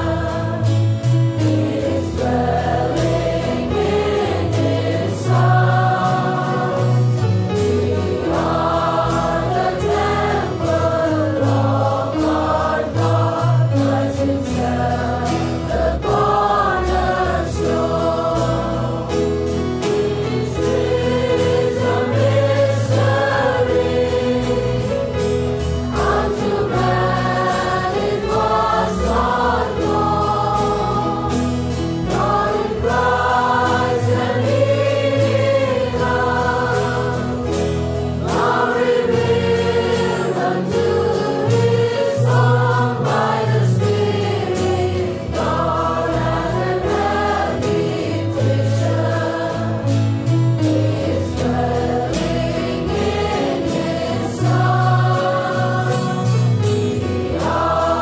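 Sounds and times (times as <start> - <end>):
choir singing gospel music: 0.0 - 58.0.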